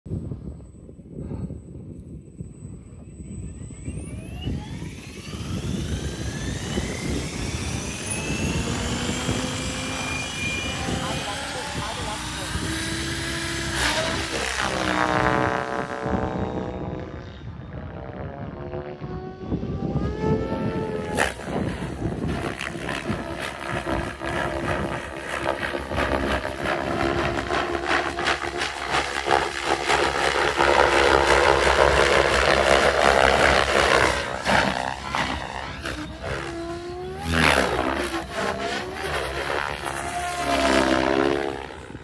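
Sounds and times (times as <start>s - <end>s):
rc helicopter motor whine: 1.5s - 42.0s.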